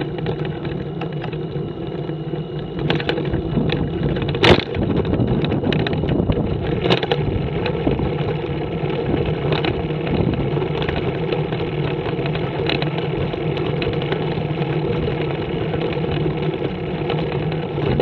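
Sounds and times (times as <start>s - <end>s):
trike engine humming: 0.0s - 18.0s
rushing road noise: 2.7s - 18.0s.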